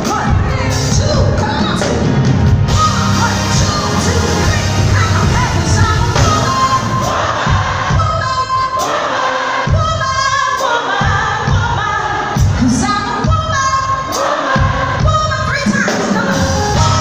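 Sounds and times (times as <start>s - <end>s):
live band playing: 0.0s - 17.0s
woman singing: 2.7s - 7.2s, 7.9s - 9.0s, 9.6s - 17.0s.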